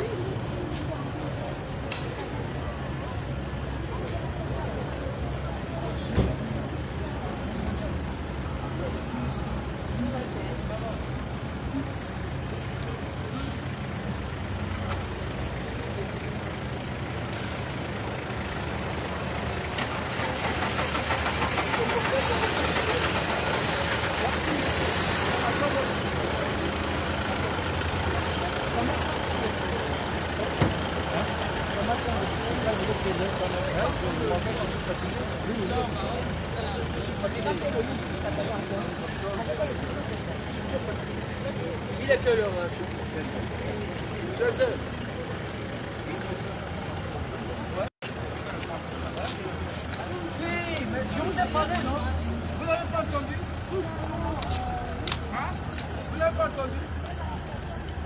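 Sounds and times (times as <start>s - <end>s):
car engine idling: 0.0s - 58.0s
indistinct crowd voices: 0.0s - 58.0s.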